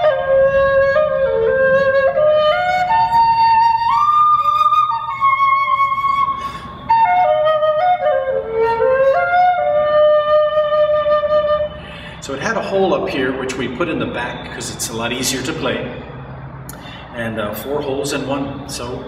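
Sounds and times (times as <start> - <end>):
flute playing slow melody: 0.0 - 12.0.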